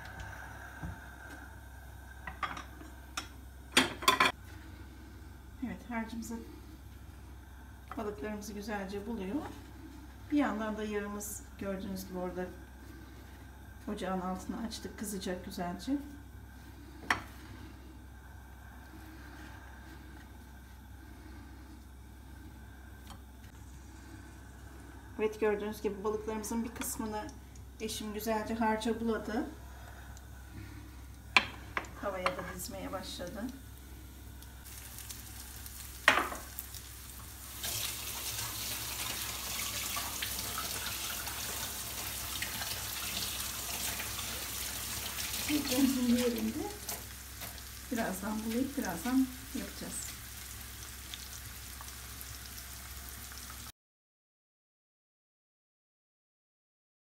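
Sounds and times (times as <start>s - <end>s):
steady low hum: 0.0s - 37.7s
fish sizzling in hot oil: 33.6s - 53.7s.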